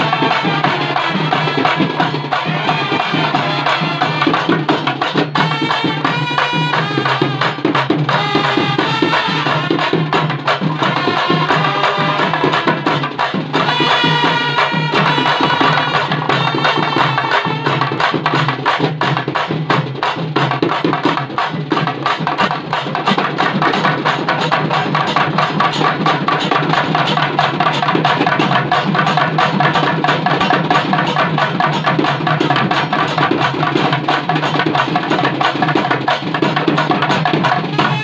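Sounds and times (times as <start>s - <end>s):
trumpets playing a melody: 0.0s - 4.8s, 5.4s - 10.2s, 10.8s - 13.0s, 13.6s - 18.1s, 37.6s - 38.0s
barrel drums beaten fast: 0.0s - 38.0s.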